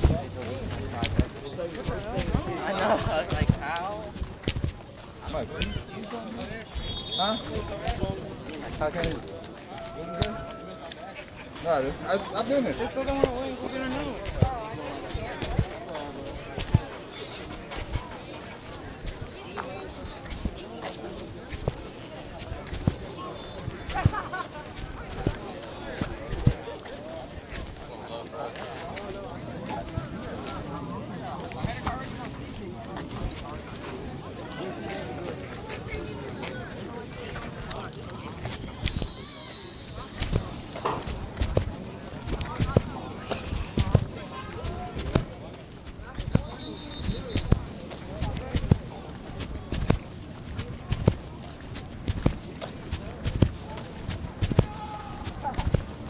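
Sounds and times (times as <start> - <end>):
distant voices murmuring: 0.0 - 56.0
clothing rubbing on phone microphone: 39.8 - 56.0.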